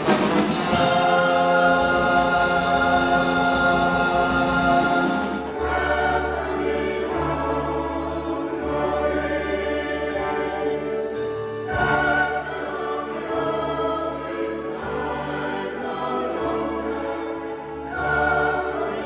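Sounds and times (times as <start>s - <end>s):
mixed choir singing: 0.0s - 19.0s
symphony orchestra: 0.0s - 19.0s.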